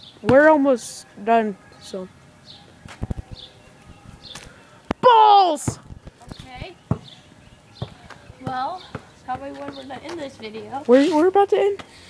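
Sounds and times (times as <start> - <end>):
basketball bouncing on concrete: 4.9 - 7.2, 7.8 - 10.6.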